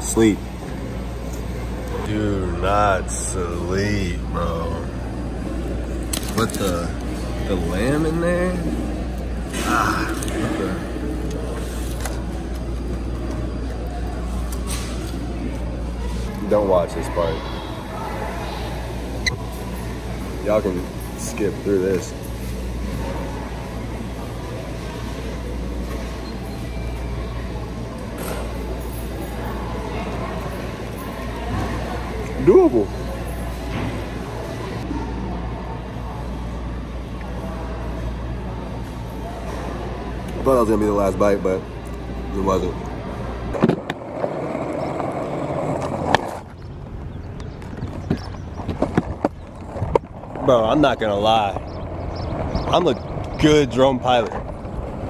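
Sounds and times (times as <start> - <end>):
skateboard wheels rolling on asphalt: 43.6 - 55.0.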